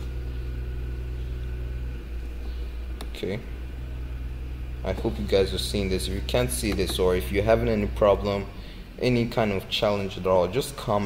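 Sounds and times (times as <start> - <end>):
low hum with faint buzz: 0.0 - 11.0.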